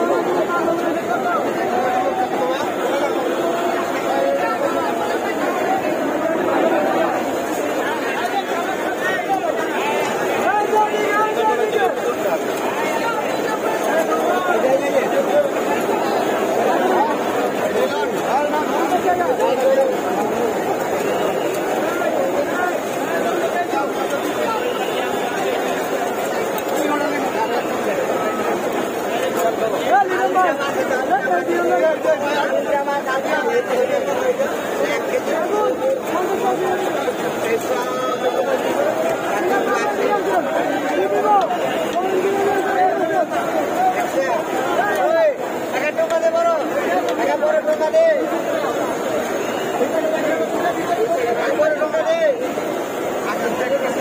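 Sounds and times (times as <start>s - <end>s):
crowd chatter: 0.0s - 54.0s.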